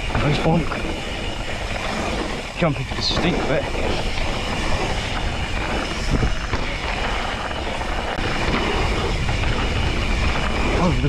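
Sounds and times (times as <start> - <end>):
bike bumps: 0.0 - 10.8
bike tyres rumbling on dirt: 0.0 - 11.0
wind on microphone: 0.0 - 11.0.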